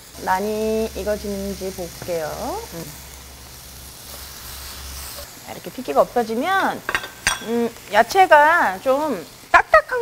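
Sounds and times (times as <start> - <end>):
meat sizzling in a frying pan: 0.0 - 10.0.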